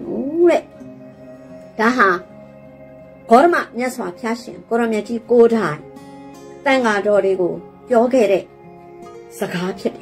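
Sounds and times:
woman speaking: 0:00.0 - 0:00.8, 0:01.8 - 0:02.3, 0:03.3 - 0:05.9, 0:06.6 - 0:08.5, 0:09.3 - 0:10.0
soft background music: 0:00.0 - 0:10.0.

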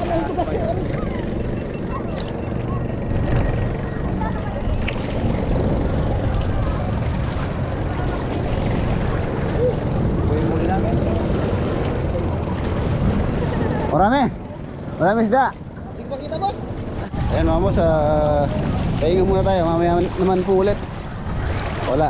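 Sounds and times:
faint people's voices: 0:00.0 - 0:17.3
wind on microphone: 0:00.0 - 0:22.0.

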